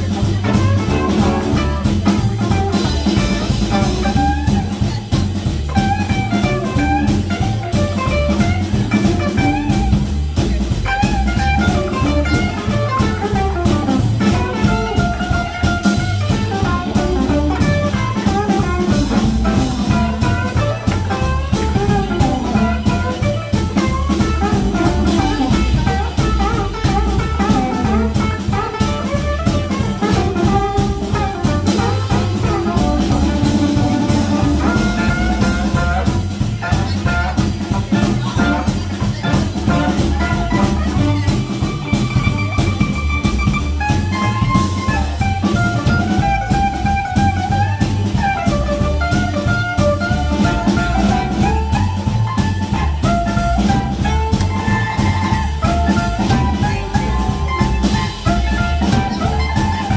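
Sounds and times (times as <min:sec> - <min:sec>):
blues band playing: 0:00.0 - 0:59.9
harmonica melody: 0:10.8 - 0:59.9.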